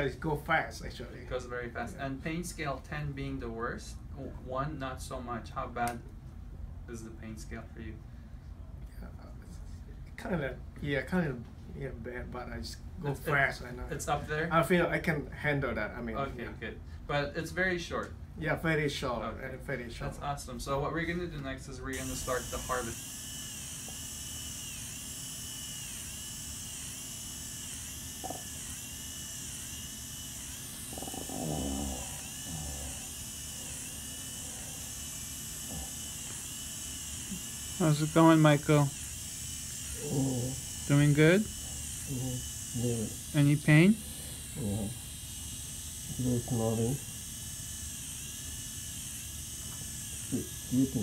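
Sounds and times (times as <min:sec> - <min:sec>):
high-pitched motor whine: 0:21.9 - 0:51.0.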